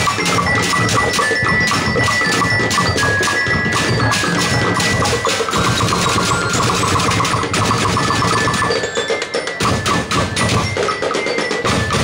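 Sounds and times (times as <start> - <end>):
high-pitched melodic notes: 0.0 - 12.0
percussion band drumming: 0.0 - 12.0.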